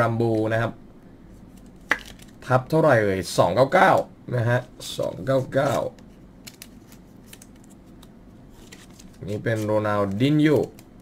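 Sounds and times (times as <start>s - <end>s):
card ticks and rustles: 5.1s - 10.9s.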